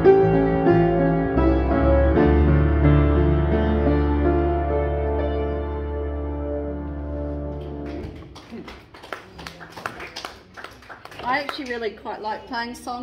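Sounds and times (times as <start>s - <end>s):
piano and bass chord: 0.0s - 8.2s
woman talking: 11.2s - 13.0s.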